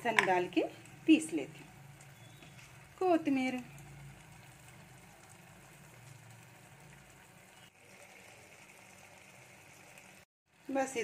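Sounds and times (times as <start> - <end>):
curry simmering hiss: 0.4 - 11.0.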